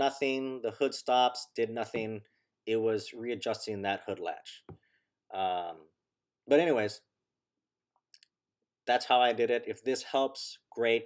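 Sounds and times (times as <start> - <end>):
person speaking: 5.3 - 5.8.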